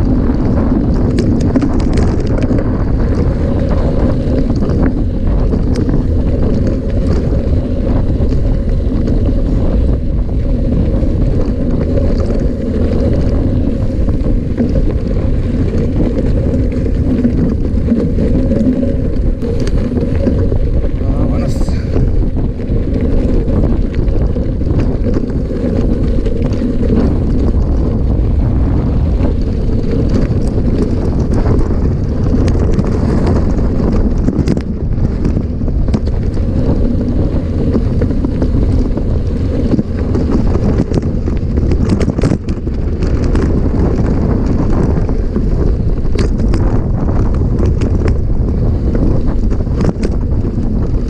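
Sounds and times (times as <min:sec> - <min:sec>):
bike tyres rolling over gravel: 0:00.0 - 0:51.0
wind buffeting microphone: 0:00.0 - 0:51.0.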